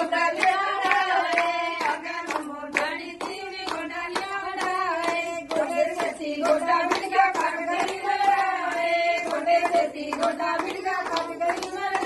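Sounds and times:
rhythmic hand clapping: 0.0s - 12.0s
women singing together: 0.0s - 12.0s.

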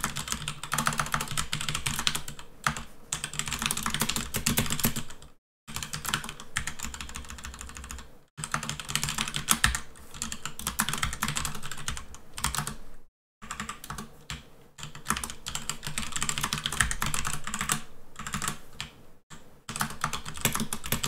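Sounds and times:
fast keyboard typing: 0.0s - 12.8s, 13.4s - 21.0s.

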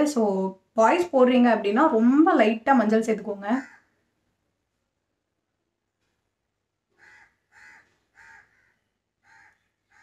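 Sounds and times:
bird calling faintly: 3.6s - 4.1s, 6.9s - 10.0s.

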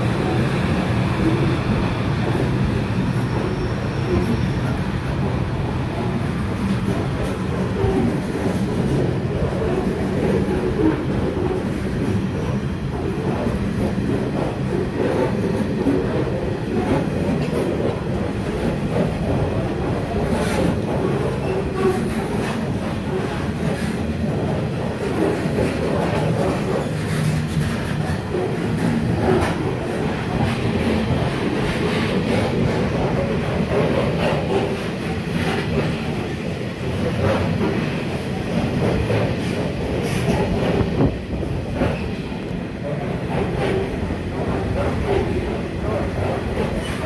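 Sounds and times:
train wheels rumbling on rails: 0.0s - 47.0s.

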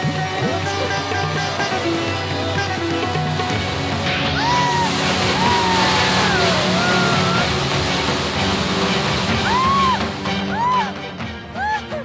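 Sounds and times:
low dramatic music: 0.0s - 12.0s
high wavering wail: 4.4s - 7.6s.

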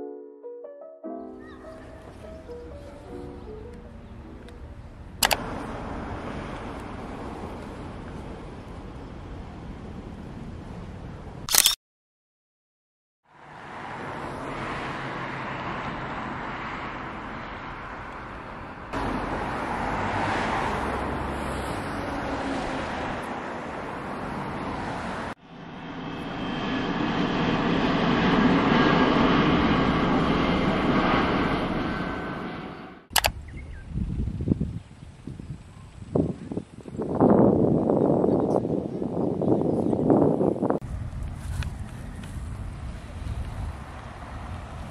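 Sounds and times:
road traffic noise: 1.3s - 11.8s, 13.2s - 44.9s
jet airliner passing overhead: 1.4s - 10.4s, 13.4s - 33.1s, 40.1s - 44.9s
gusty noise: 26.3s - 44.9s.

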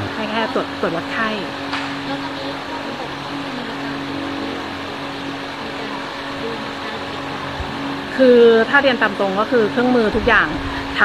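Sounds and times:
constant low drone: 0.0s - 11.0s.

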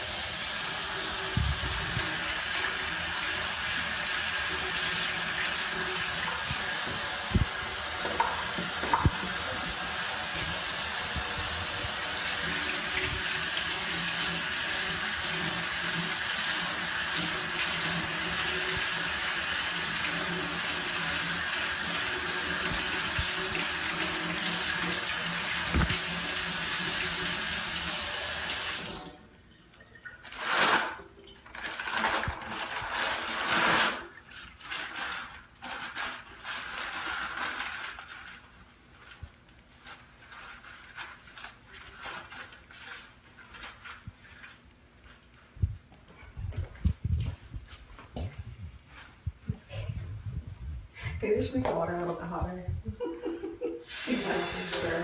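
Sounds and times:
tap water running into sink: 0.0s - 29.2s, 53.0s - 55.0s.

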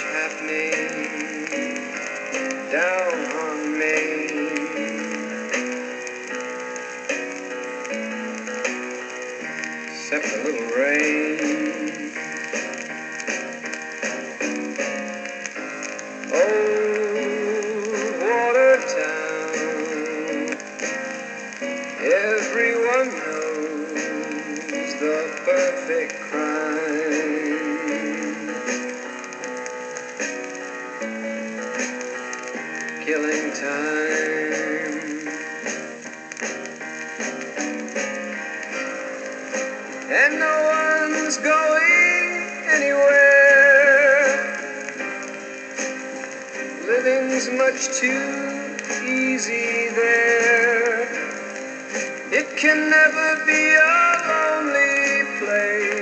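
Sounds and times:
light steady ticking: 0.0s - 56.0s
person singing: 0.0s - 56.0s
pop song from a turntable: 0.0s - 56.0s
record playing instrumental melody: 0.0s - 56.0s.

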